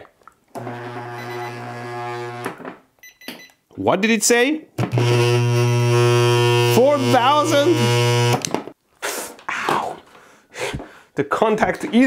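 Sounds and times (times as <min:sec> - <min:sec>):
transformer humming loudly: 0:04.9 - 0:08.4.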